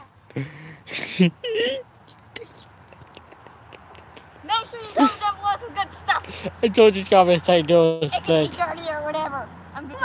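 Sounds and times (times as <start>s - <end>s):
child calling out: 4.4s - 6.2s.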